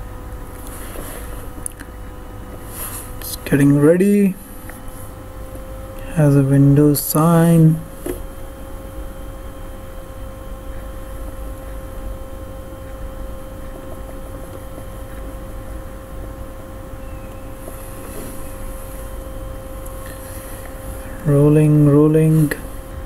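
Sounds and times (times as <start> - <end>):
low hum: 0.0 - 23.0.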